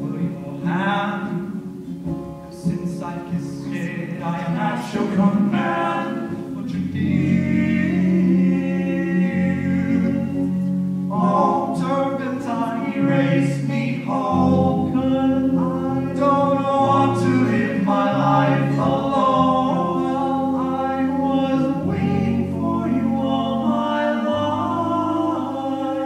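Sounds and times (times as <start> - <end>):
sustained low bass notes: 0.0 - 26.0
a cappella group singing in harmony: 2.6 - 26.0.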